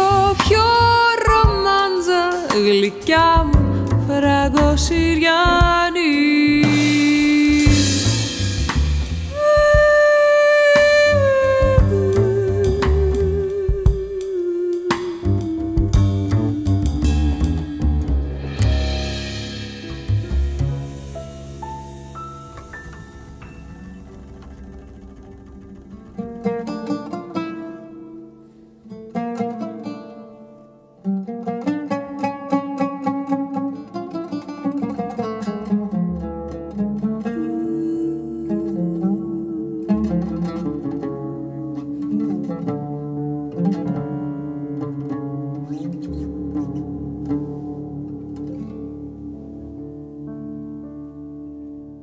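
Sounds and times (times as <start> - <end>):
plucked string melody: 0.0 - 52.0
low bass notes: 3.2 - 10.1, 10.8 - 28.4.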